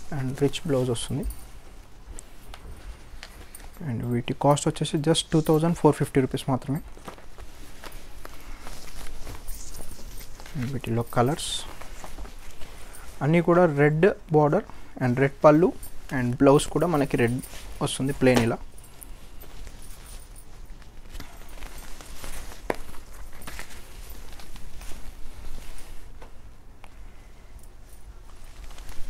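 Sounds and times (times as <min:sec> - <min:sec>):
fabric rustling: 0:00.0 - 0:29.0.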